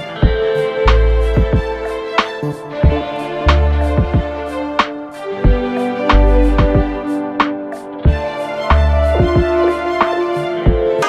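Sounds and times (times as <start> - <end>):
deep bass: 0.2 - 2.0, 2.8 - 4.7, 5.5 - 7.1, 8.1 - 9.8.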